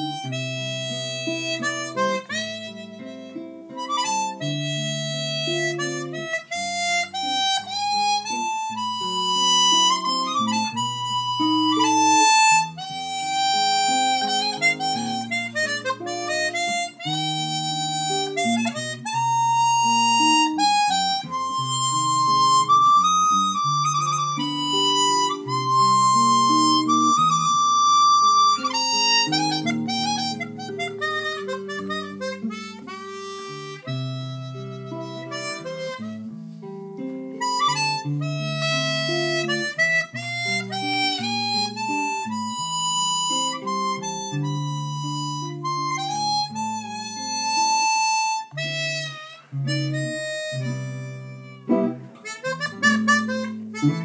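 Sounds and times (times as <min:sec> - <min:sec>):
chromatic harmonica melody: 0:00.0 - 0:54.0
sustained accompaniment notes: 0:37.4 - 0:54.0.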